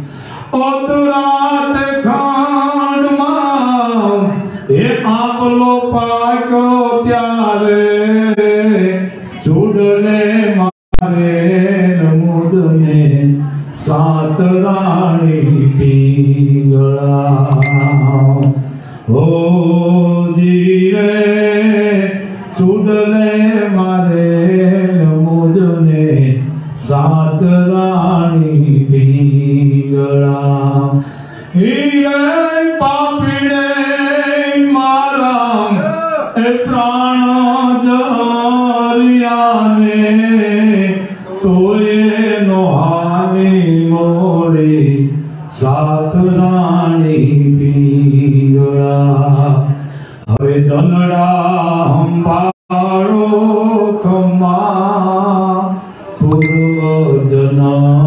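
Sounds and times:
man chanting into a microphone: 0.0 - 17.6, 18.5 - 58.0.

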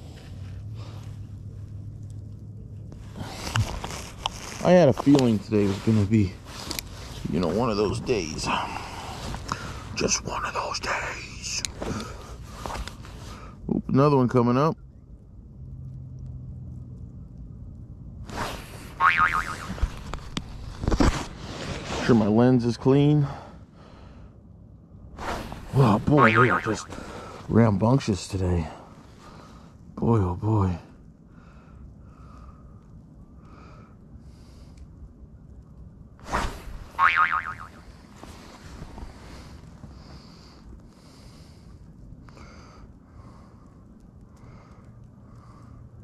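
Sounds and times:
cartoon boing effect: 19.0 - 19.6, 37.0 - 37.7.

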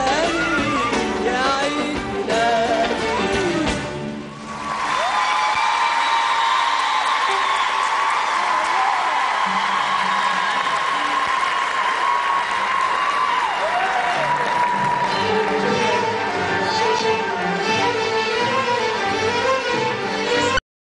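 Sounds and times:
audience applauding and cheering: 4.2 - 19.3
orchestral music: 13.6 - 20.6.

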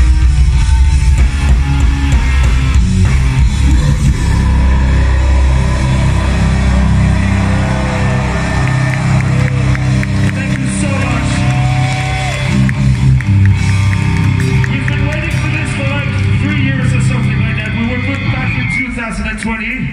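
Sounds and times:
death metal band playing live: 0.0 - 19.9
crowd shouting: 3.7 - 12.6.

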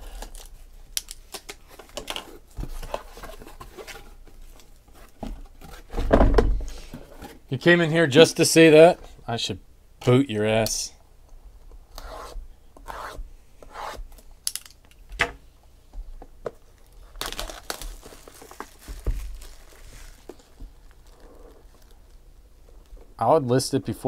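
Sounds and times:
plastic wrap crinkling and tearing: 16.7 - 22.9.

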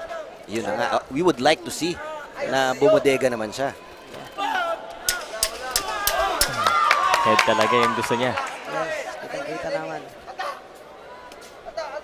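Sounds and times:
crowd shouting: 3.8 - 11.3.

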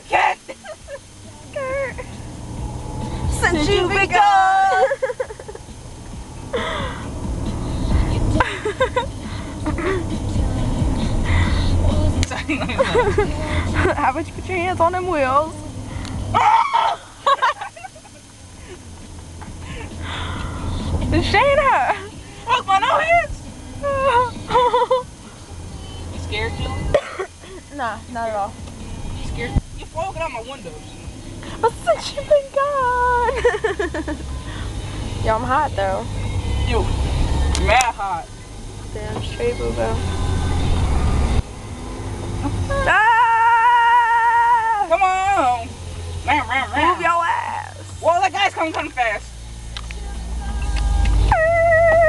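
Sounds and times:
car engine rumble: 0.0 - 52.0
road noise inside car: 0.0 - 52.0.

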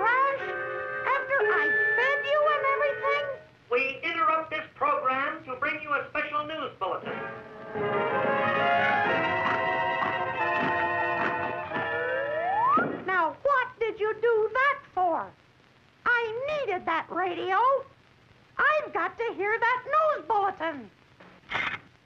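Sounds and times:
cartoon music: 7.8 - 13.0.

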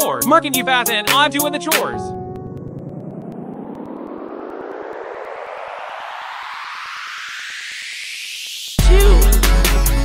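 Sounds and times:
rising whooshing sweep: 2.0 - 8.8.

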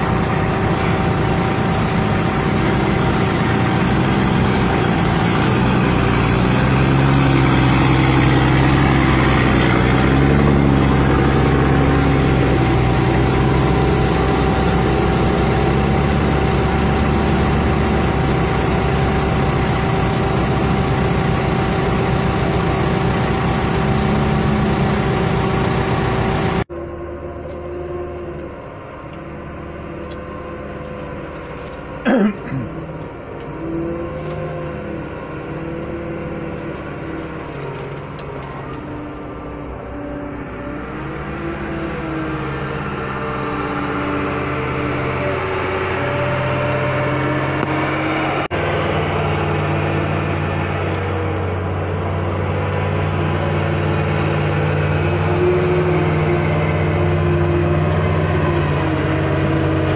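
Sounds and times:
distant engine: 0.0 - 59.9
heavy truck engine running: 0.0 - 59.9.

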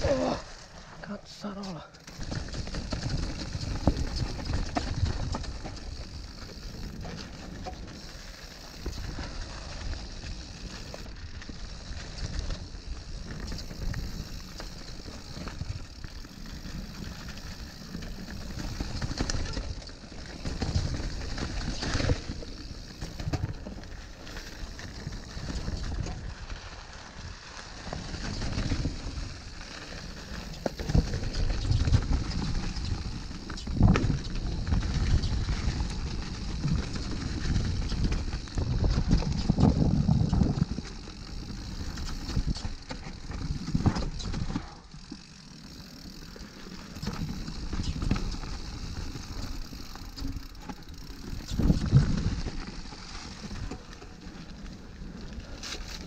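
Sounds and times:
bike tyres and rattle on rough trail: 0.0 - 56.0.

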